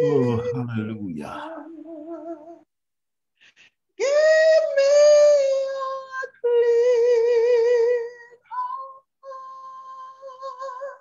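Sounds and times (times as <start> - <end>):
woman singing unaccompanied: 0.0 - 0.8, 4.5 - 11.0.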